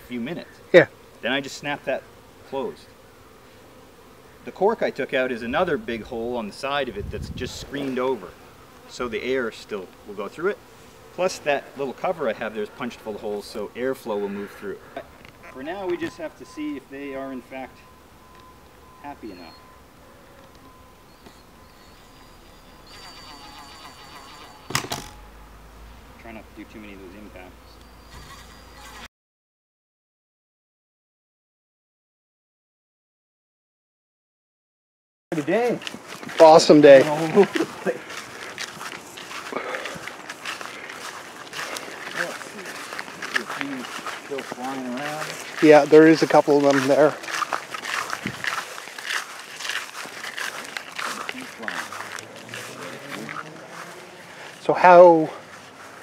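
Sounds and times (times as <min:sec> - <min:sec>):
footsteps through long grass: 0:35.3 - 0:56.0.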